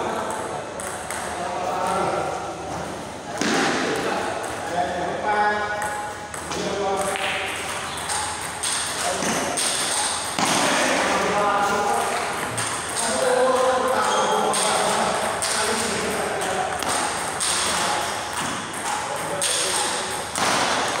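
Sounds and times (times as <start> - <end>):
table tennis ball clicking: 0.2 - 1.4, 5.7 - 10.4, 11.9 - 21.0.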